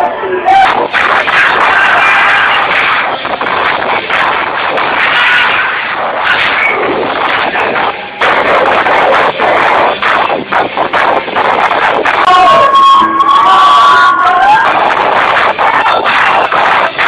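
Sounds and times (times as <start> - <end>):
crowd cheering and shouting: 0.0 - 17.0
distorted live rock band: 0.0 - 17.0
long held high note: 12.3 - 15.2.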